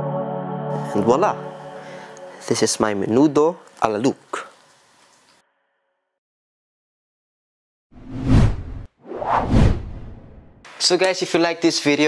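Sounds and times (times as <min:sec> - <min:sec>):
whoosh transition effects: 0:08.0 - 0:10.6.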